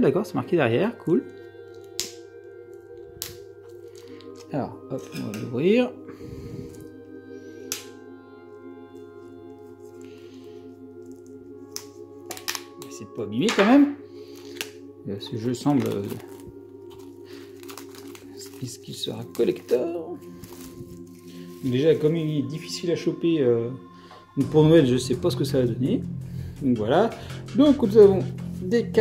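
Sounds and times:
soft background music: 0.0 - 29.0
plastic wrap crackling: 15.4 - 22.3.

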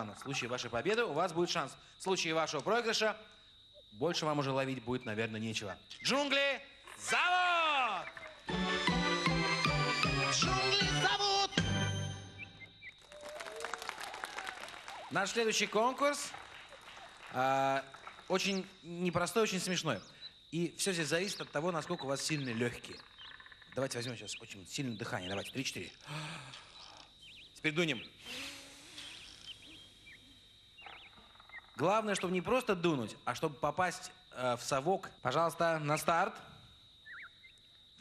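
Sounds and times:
high chirps: 3.7 - 13.6, 14.6 - 26.1, 26.7 - 32.9, 37.0 - 37.7
small group applauding: 12.9 - 18.7
children blowing breath: 28.2 - 29.2.

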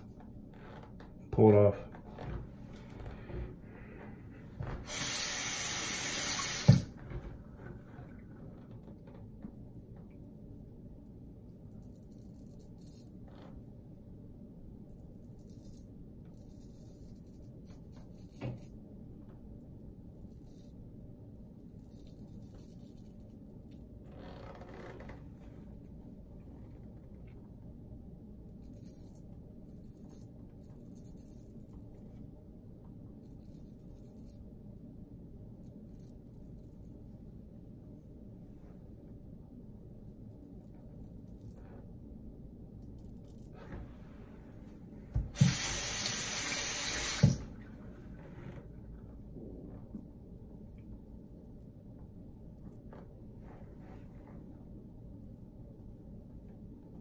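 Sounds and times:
steady low hum: 0.0 - 57.0
tap running into sink: 4.8 - 7.0, 45.2 - 47.5.

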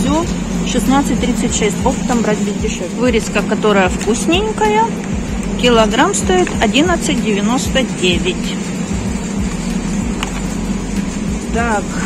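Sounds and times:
refrigerated display cases humming: 0.0 - 12.0.

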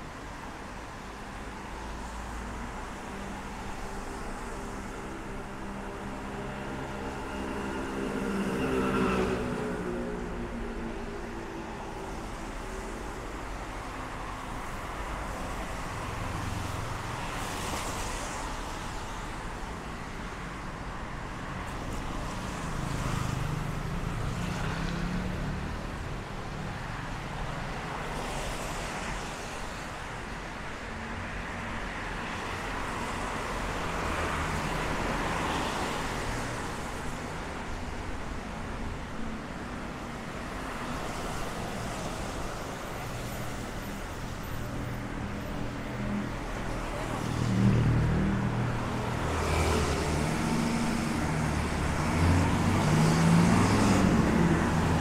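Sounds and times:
road noise rumble: 0.0 - 55.0
vehicles passing: 0.0 - 55.0.

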